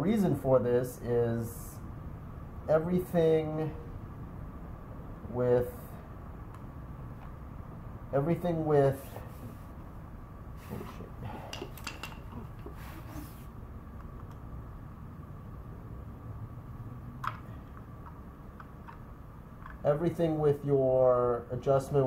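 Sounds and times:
low room hum: 0.0 - 22.0
small metallic clinks: 11.5 - 12.8.

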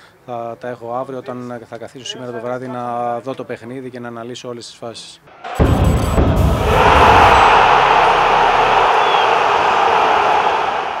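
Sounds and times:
low rumble: 5.3 - 9.0.

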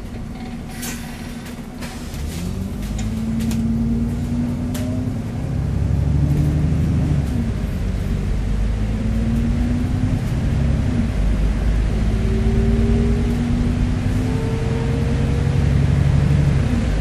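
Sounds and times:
bus diesel engine accelerating: 0.0 - 17.0.

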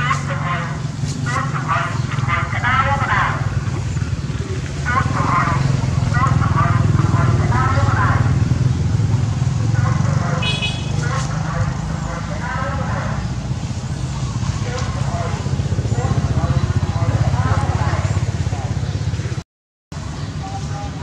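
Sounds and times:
people talking: 0.0 - 8.6, 9.2 - 13.3, 14.4 - 19.0, 20.1 - 21.0
vehicle engine rumble: 0.0 - 19.4, 20.0 - 21.0.

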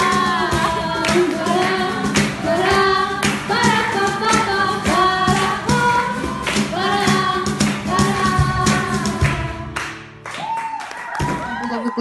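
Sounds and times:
cajon strokes: 0.0 - 9.5
woman singing: 0.0 - 9.8
strummed acoustic guitar: 0.0 - 10.2.

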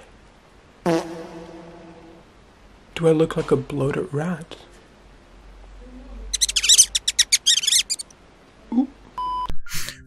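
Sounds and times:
high-pitched squeaks: 6.3 - 8.1.

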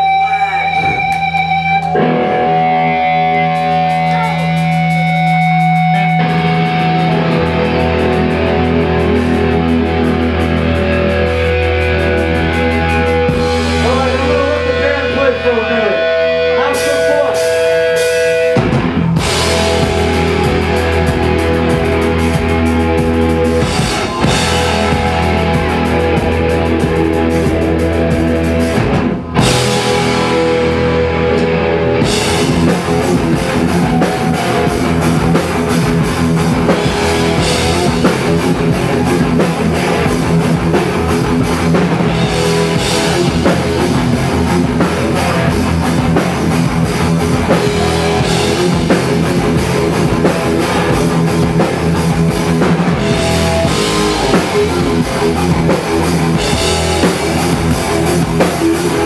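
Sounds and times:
drums and cymbals: 0.0 - 15.2, 16.4 - 59.0
low bass: 0.0 - 16.7, 17.4 - 59.0
distorted electric guitars: 0.0 - 59.0.

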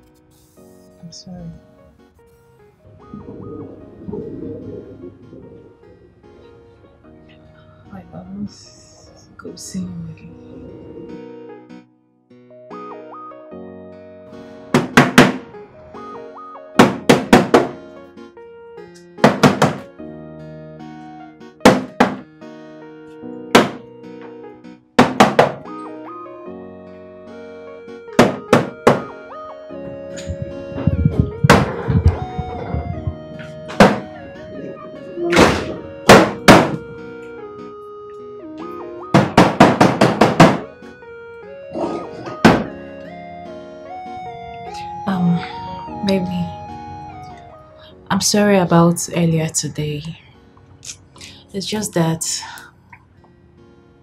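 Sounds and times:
background music: 0.0 - 54.0
hands slapping tv casing: 14.8 - 15.5, 16.8 - 17.8, 19.1 - 19.9, 21.7 - 22.3, 23.6 - 23.9, 25.0 - 25.8, 28.2 - 29.2, 30.1 - 34.2, 35.3 - 37.0, 39.2 - 40.8, 42.2 - 42.8.

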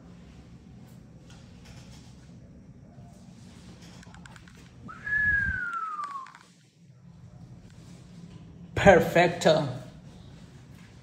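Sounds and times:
person whistling sliding note: 4.9 - 6.5.

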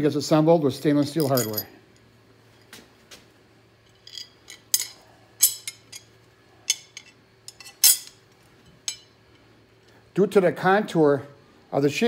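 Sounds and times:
faint steady hum: 0.0 - 12.0
steel bars clinking: 1.2 - 1.7, 3.9 - 9.1.

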